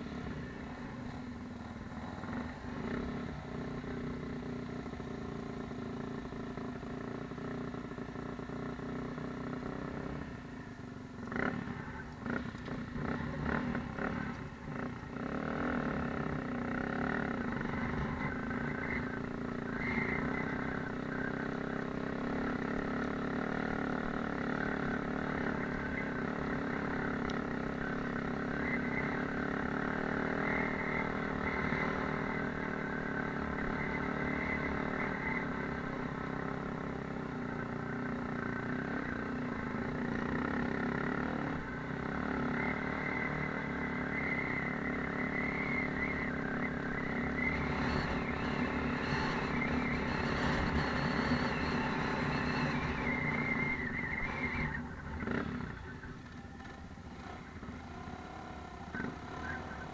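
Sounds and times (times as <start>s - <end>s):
dirt bike engine running: 1.9s - 59.9s.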